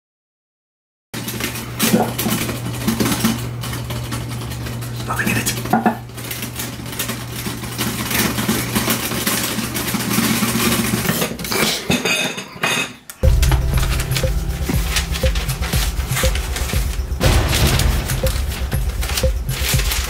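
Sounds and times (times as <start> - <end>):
steady low hum: 13.2 - 20.0
typewriter key strikes: 13.2 - 20.0.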